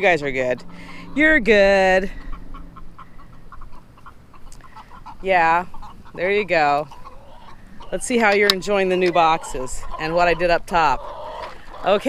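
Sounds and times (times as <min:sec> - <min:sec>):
hens clucking softly: 0:00.0 - 0:12.0.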